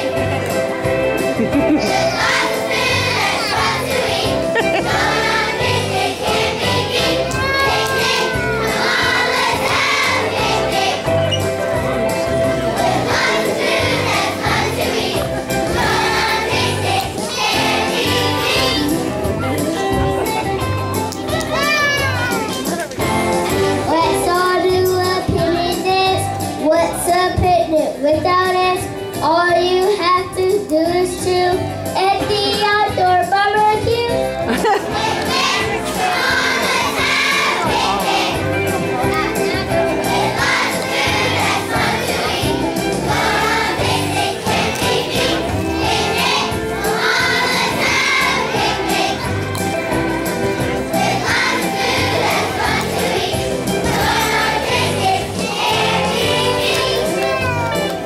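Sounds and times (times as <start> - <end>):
children singing together: 1.7 - 11.4, 12.7 - 19.0, 34.7 - 57.7.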